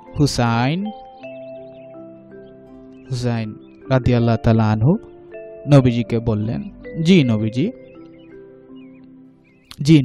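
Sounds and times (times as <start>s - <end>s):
soft background music: 0.0s - 10.0s
man talking: 0.2s - 0.9s, 3.1s - 5.0s, 5.7s - 7.8s, 9.7s - 10.0s.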